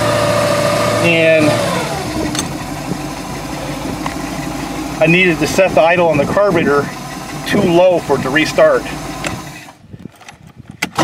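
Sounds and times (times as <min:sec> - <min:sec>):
boat engine idling: 0:00.0 - 0:10.1.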